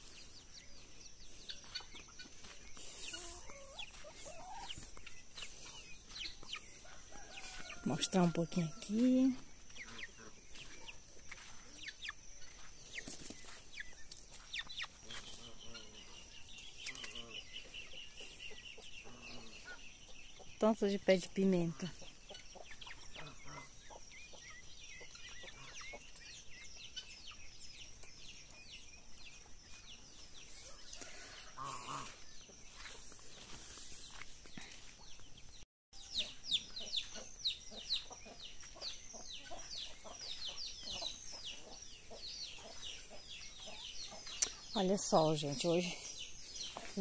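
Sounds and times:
chickens clucking: 0:00.0 - 0:35.3, 0:36.0 - 0:47.0
small birds chirping: 0:00.0 - 0:47.0.

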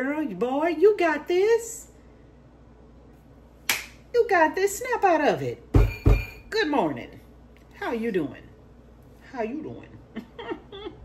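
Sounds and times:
finger snap: 0:03.6 - 0:04.0.

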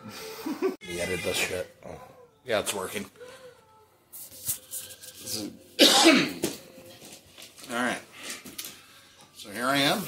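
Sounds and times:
man coughing: 0:05.8 - 0:06.5.

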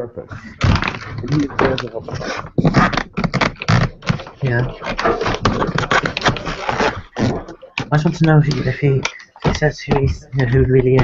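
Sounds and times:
clattering and rustling on microphone: 0:00.3 - 0:11.0.

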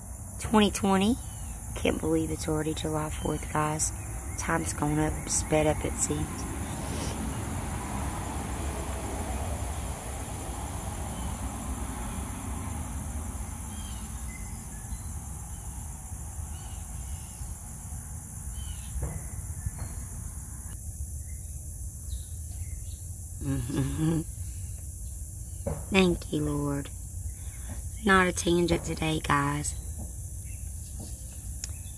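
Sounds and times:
low steady rumble: 0:00.0 - 0:30.8.

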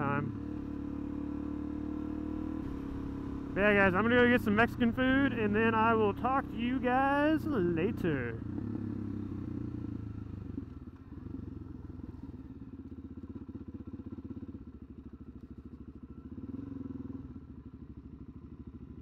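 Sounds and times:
motorcycle engine: 0:00.0 - 0:19.0.

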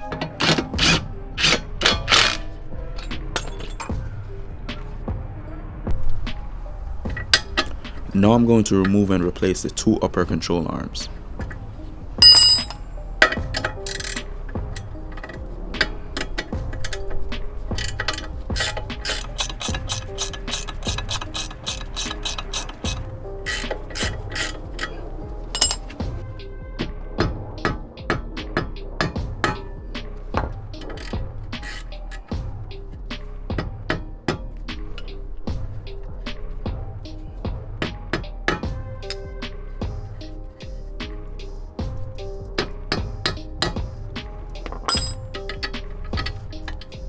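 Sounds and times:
background music: 0:00.0 - 0:47.0
ratchet wrench clicking: 0:00.4 - 0:02.4, 0:12.2 - 0:25.0, 0:30.8 - 0:32.3.

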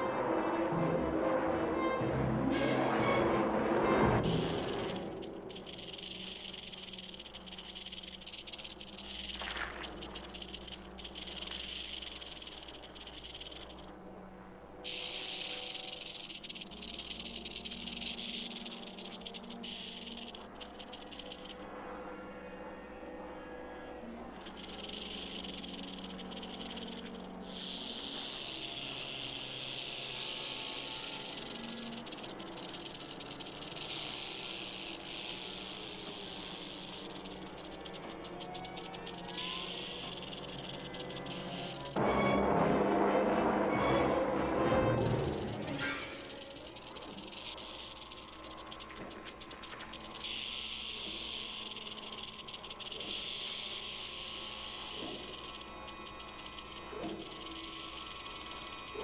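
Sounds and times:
rattlesnake rattling: 0:04.0 - 0:14.0, 0:14.8 - 0:21.7, 0:24.3 - 0:42.0, 0:44.7 - 0:59.0.

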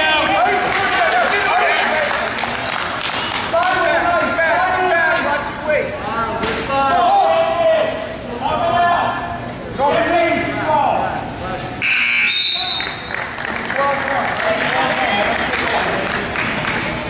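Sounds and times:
people shouting in a gym: 0:06.6 - 0:09.4
electronic scoreboard buzzer: 0:11.8 - 0:13.1.

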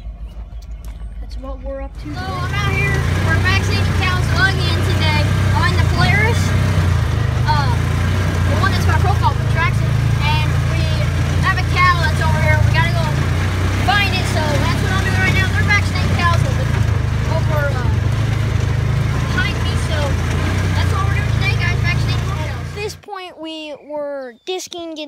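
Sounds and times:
off-road vehicle engine running: 0:00.0 - 0:23.2
indistinct voices: 0:00.0 - 0:25.0.

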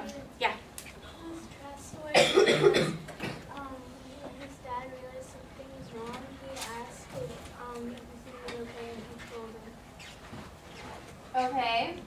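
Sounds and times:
person coughing: 0:02.1 - 0:03.5.

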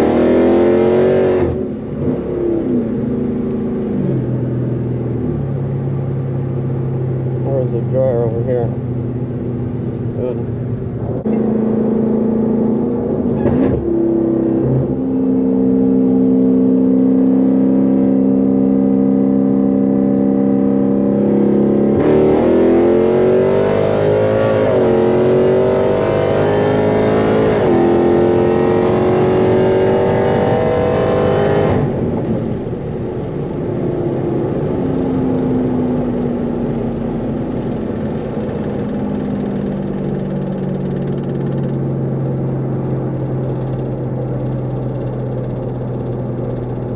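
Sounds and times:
car engine accelerating: 0:00.0 - 0:46.9
car engine droning: 0:00.0 - 0:46.9.

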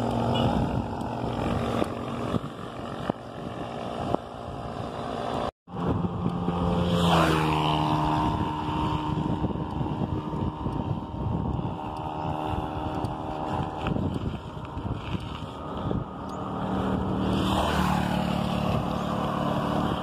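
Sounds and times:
motor vehicle passing: 0:00.0 - 0:20.0
wind and road rumble: 0:00.0 - 0:20.0.

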